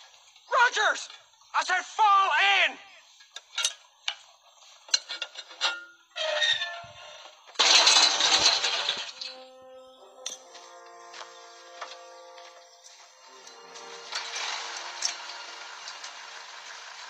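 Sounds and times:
flagpole crashing to ground: 7.5s - 9.5s
music with held notes: 9.2s - 17.0s.

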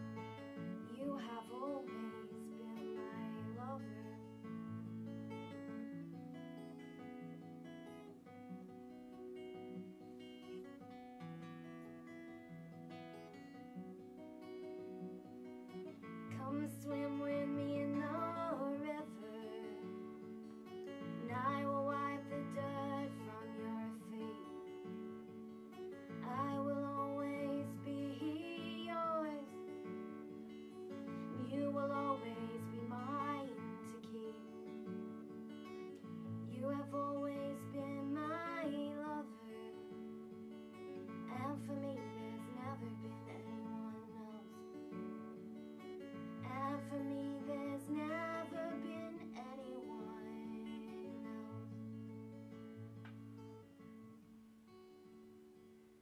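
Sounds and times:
woman singing: 0.0s - 4.9s, 15.9s - 52.1s
acoustic guitar playing: 0.0s - 56.0s.

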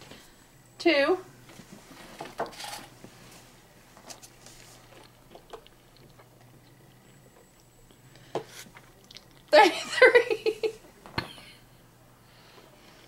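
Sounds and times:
wet squishing from mouth: 8.7s - 9.5s.

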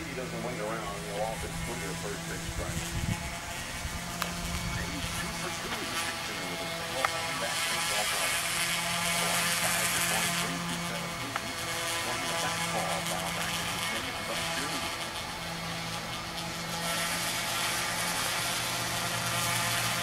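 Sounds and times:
truck engine hum: 0.0s - 20.0s
radio sports broadcast: 4.6s - 8.4s, 9.2s - 14.9s.

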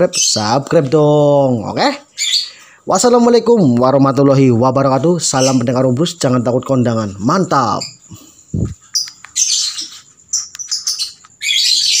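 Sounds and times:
lovebirds chirping: 0.0s - 12.0s.

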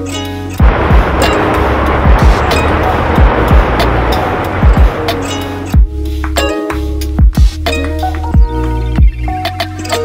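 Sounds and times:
steady rushing hiss: 0.6s - 6.4s.

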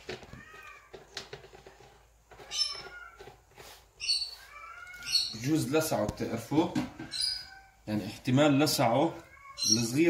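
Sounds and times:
high-pitched animal cries: 2.5s - 3.3s, 4.0s - 5.8s, 7.0s - 7.9s, 9.2s - 10.0s.

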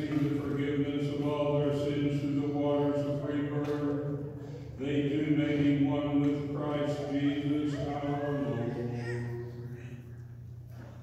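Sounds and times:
man chanting: 0.0s - 9.5s.

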